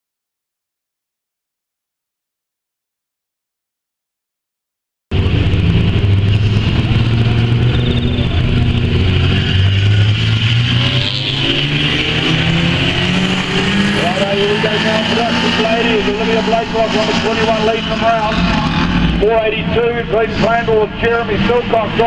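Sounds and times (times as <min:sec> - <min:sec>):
race car engines running: 0:05.1 - 0:22.0
race commentator speaking: 0:12.2 - 0:22.0.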